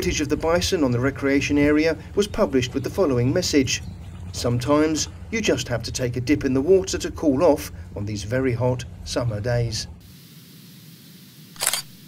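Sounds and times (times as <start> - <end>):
faint hiss: 10.0 - 12.0
sharp shutter-like sound effect: 11.5 - 12.0.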